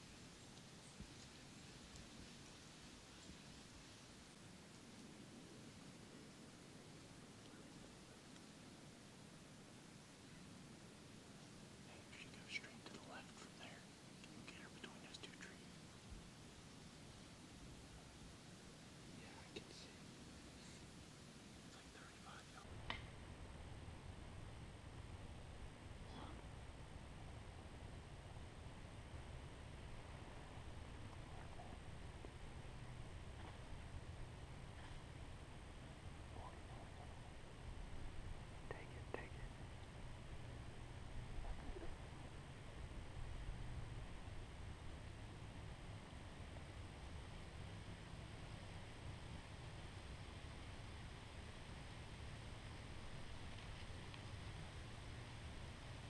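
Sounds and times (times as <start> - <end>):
low steady rumble: 0.0 - 56.0
person whispering faintly: 11.8 - 15.8, 19.2 - 20.9, 21.7 - 22.7, 26.0 - 26.4, 38.6 - 39.6, 41.4 - 42.0.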